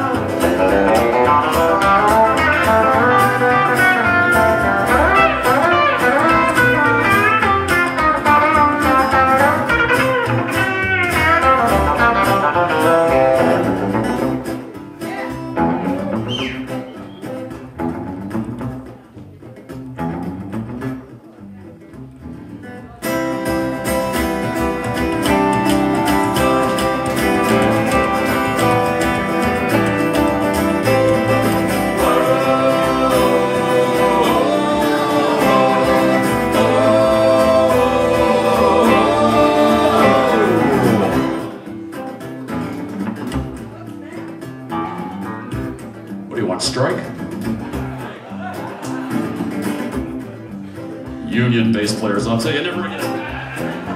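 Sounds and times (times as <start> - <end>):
bending lead guitar lines: 0.0 - 53.9
live blues band playing: 0.0 - 53.9
low bass notes: 0.0 - 53.9.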